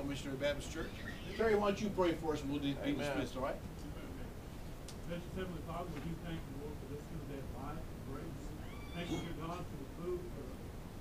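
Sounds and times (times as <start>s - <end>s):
high-pitched cry: 0.8s - 1.6s, 8.6s - 9.4s.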